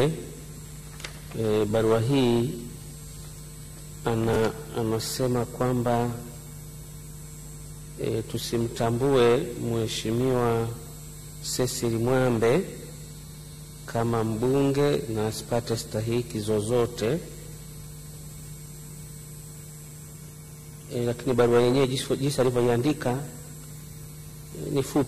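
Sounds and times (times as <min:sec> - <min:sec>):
faint hiss: 0:00.0 - 0:25.0
low electrical hum: 0:00.0 - 0:25.0.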